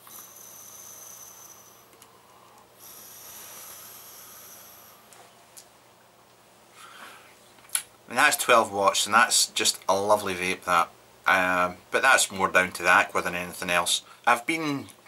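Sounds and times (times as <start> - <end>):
electronic cigarette hissing: 0.0 - 5.2
person breathing out: 0.0 - 5.2.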